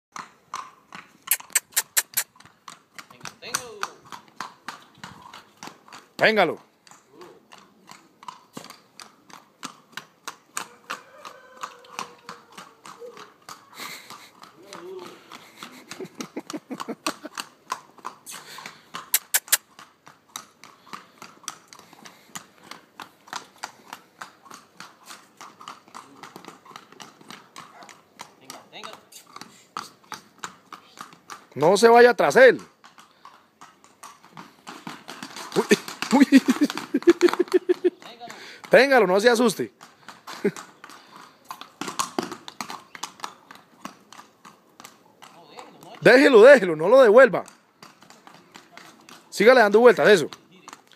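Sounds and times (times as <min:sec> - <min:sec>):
horse hooves on stone paving: 0:00.1 - 0:50.9.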